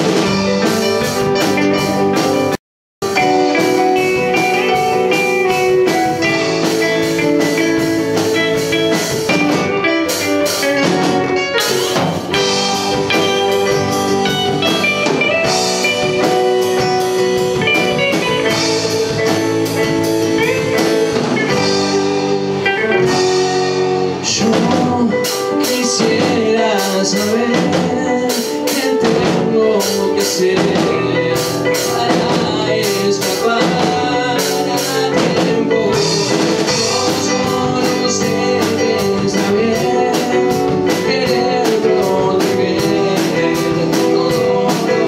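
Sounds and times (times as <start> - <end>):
drum kit: 0.0 - 45.0
electric guitar: 0.0 - 45.0
keyboard: 0.0 - 45.0.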